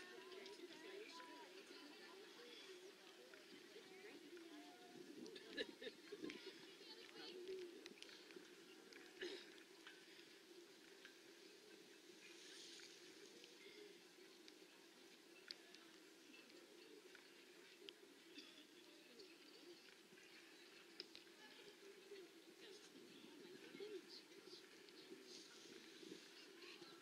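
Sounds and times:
murmur of distant voices: 0.0s - 27.0s.

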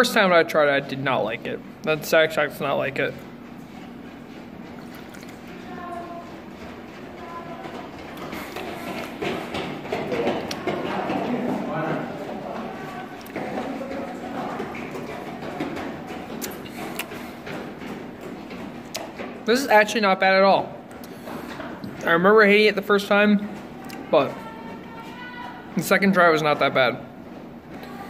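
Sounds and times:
steady low hum: 0.0s - 28.0s
indistinct voices: 5.5s - 17.1s.

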